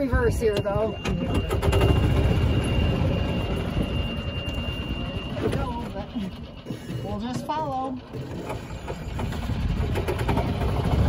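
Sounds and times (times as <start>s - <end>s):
reverse-warning beep: 0.0s - 9.8s.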